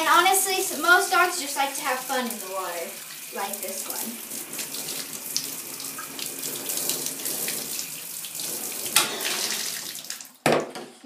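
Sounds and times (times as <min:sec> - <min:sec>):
tap water running and splashing: 0:00.0 - 0:10.8
small splashes and drips: 0:01.6 - 0:10.4.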